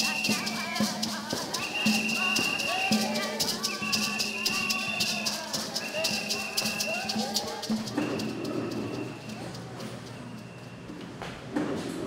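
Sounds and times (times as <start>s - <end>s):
congregation singing: 0.0s - 9.7s
hand shakers beating rhythm: 0.0s - 10.9s.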